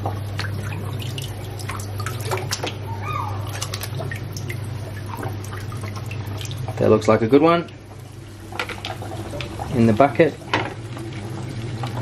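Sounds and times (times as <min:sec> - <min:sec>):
steady low hum: 0:00.0 - 0:12.0
water splashing and dripping: 0:00.0 - 0:12.0.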